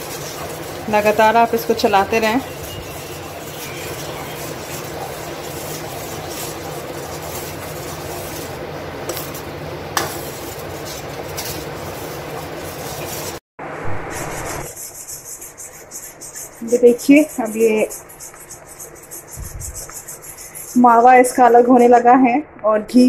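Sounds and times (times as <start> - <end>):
butter foaming: 0.0 - 13.4
spatula scraping steel pan: 0.0 - 13.4, 14.3 - 21.4.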